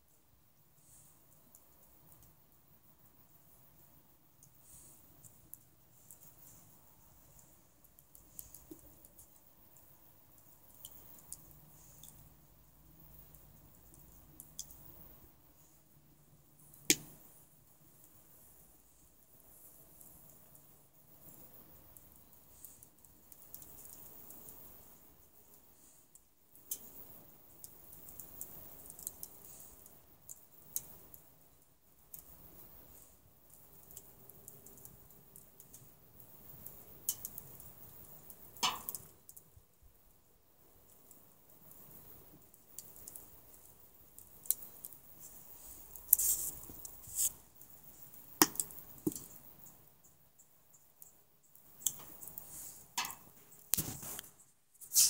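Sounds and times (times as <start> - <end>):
fire crackling and popping: 0.0 - 55.0
water boiling in a pot: 0.0 - 55.0.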